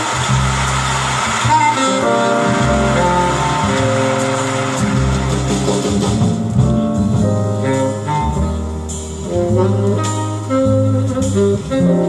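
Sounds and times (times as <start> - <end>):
bass line: 0.0 - 12.0
held melodic notes: 0.0 - 12.0.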